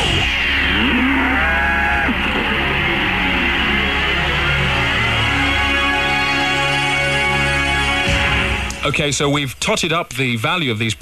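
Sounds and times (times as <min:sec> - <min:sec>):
jingle music with sliding tones: 0:00.0 - 0:08.0.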